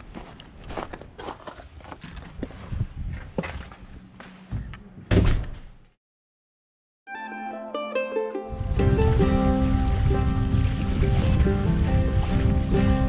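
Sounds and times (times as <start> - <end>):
loud thump: 5.1 - 5.7
deeper instruments: 7.1 - 13.0
plucked string notes: 7.1 - 13.0.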